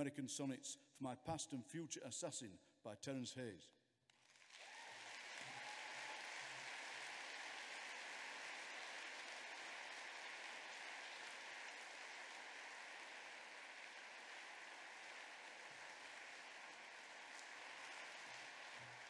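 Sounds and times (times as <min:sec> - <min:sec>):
audience applauding: 0:04.1 - 0:19.0.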